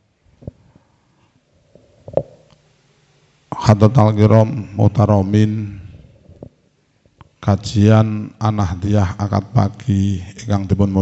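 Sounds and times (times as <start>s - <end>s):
mouth and throat noise: 1.7s - 2.6s.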